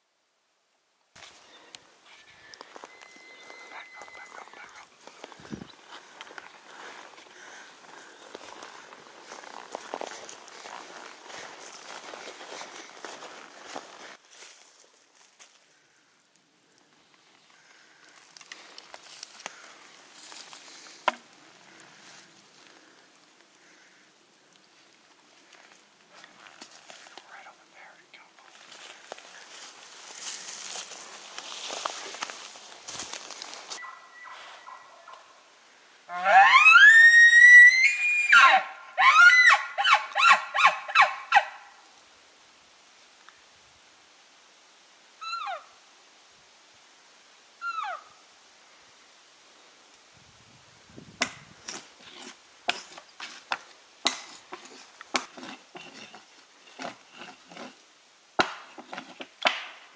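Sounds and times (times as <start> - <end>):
footsteps on dry forest floor: 1.2 - 15.9, 17.1 - 24.0, 24.7 - 35.3
twigs and leaves crackling: 1.2 - 35.3, 51.2 - 59.9.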